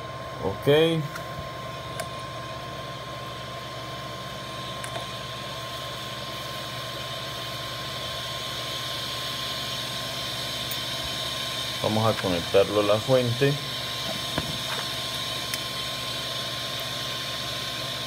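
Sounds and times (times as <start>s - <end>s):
machine hum and hiss: 0.0s - 18.0s.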